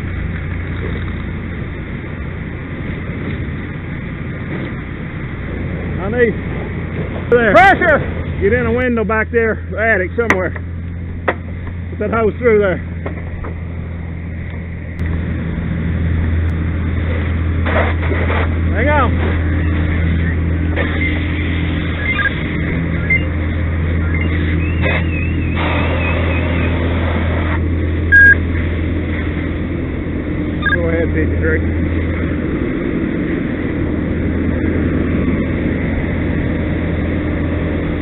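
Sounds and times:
low engine drone: 0:00.0 - 0:38.0
short loud beep: 0:28.1 - 0:28.4.

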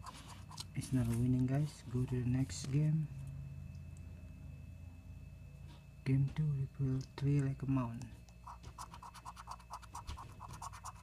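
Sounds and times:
scratching lottery ticket: 0:08.4 - 0:11.0.

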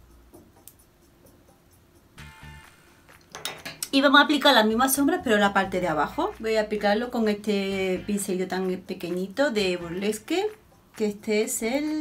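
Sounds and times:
faint background music: 0:00.0 - 0:12.0
makeup brushes clinking: 0:03.2 - 0:03.9.

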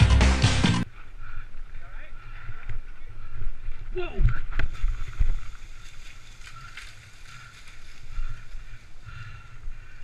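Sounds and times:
background music: 0:00.0 - 0:00.8
mountain bike rolling on dirt: 0:01.4 - 0:10.0.

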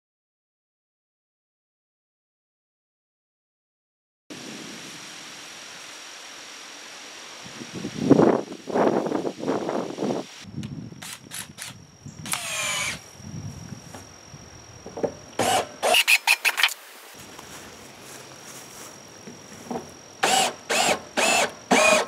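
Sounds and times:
cordless drill whining: 0:11.0 - 0:13.1, 0:15.4 - 0:16.8, 0:20.2 - 0:22.0.

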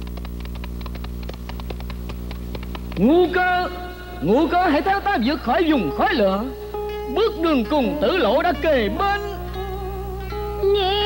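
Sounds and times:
galloping horse hoofbeats: 0:00.0 - 0:03.2
low steady hum: 0:00.0 - 0:11.0.

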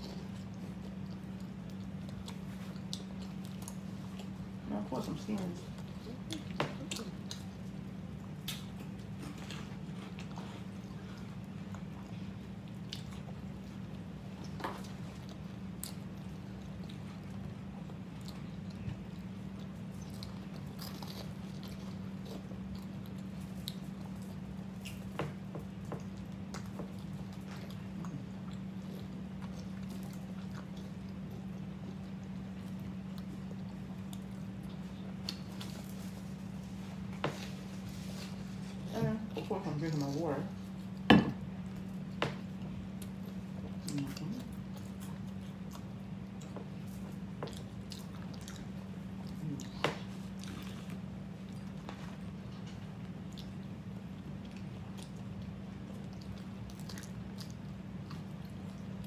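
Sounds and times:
chewing and biting sandwich: 0:00.0 - 0:04.7, 0:05.3 - 0:59.0.

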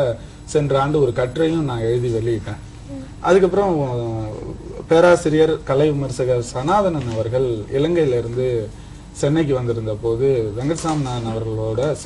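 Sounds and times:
man talking: 0:00.0 - 0:02.6, 0:03.2 - 0:12.0.

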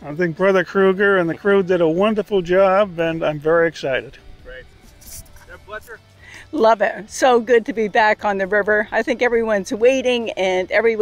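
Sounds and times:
short rustle: 0:04.8 - 0:05.9.

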